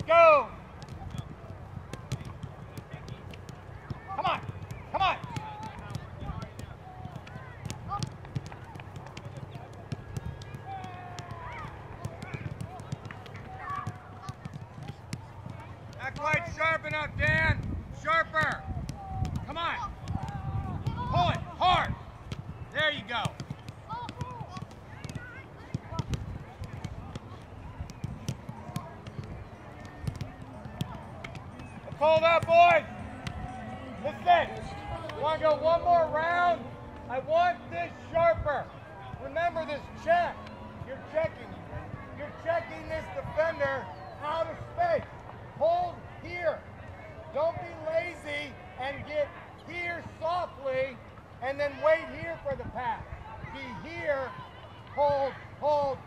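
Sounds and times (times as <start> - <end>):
balls kicked on artificial turf: 0.0 - 46.6
faint distant voices calling: 0.0 - 56.0.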